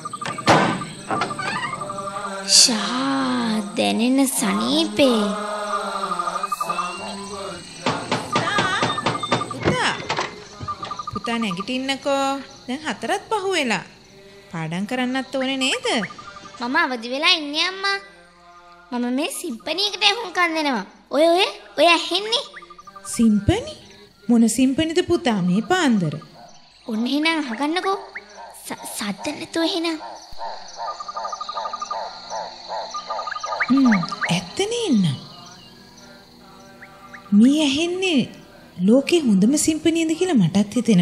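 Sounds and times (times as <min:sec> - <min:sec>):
voice singing sliding notes: 0:00.0 - 0:12.1, 0:33.6 - 0:40.5
repeating animal call: 0:00.0 - 0:14.3, 0:15.1 - 0:18.8, 0:21.6 - 0:41.0
steady high drone: 0:00.8 - 0:08.4, 0:33.4 - 0:39.4.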